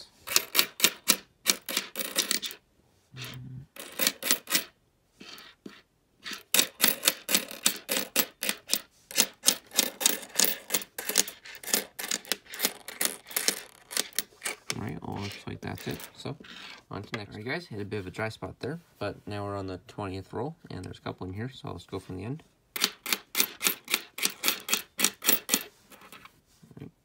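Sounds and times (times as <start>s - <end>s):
coins clinking on a tabletop: 0.2s - 2.6s, 3.2s - 16.8s, 22.8s - 26.3s.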